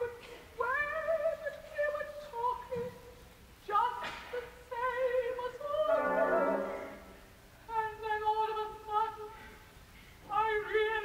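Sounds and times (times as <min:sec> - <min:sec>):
operatic soprano singing: 0:00.0 - 0:03.0, 0:03.6 - 0:09.5, 0:10.2 - 0:11.0.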